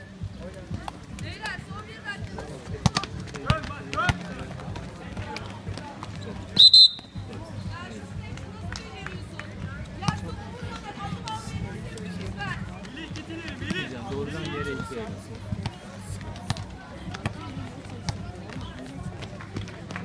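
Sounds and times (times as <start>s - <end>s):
referee whistle blasts: 6.6s - 7.2s.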